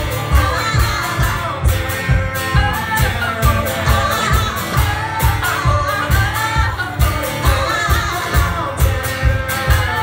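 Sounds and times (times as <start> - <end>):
acoustic guitar: 0.0 - 10.0
woman singing: 0.0 - 10.0.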